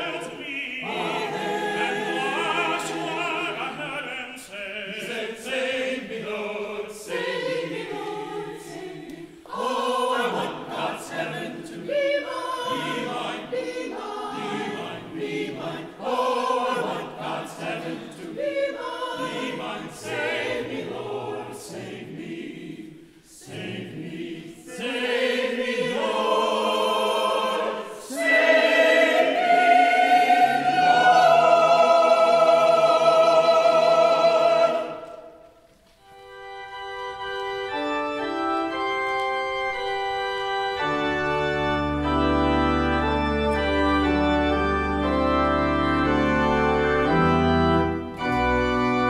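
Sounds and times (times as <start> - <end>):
choir singing: 0.0 - 49.0.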